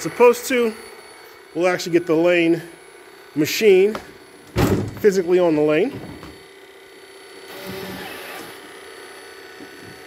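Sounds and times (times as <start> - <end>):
machine hum with high tones: 0.0 - 10.0
mechanical noise: 7.4 - 9.0.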